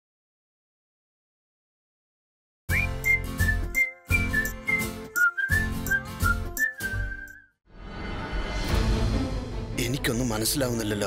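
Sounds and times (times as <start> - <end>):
whistled melody: 2.7 - 7.6.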